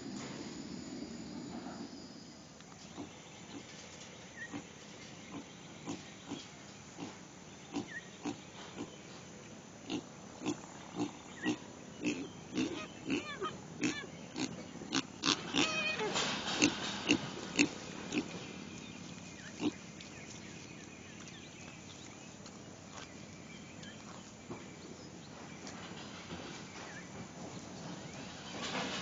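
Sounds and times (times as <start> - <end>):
animal grunting: 9.9 - 18.4.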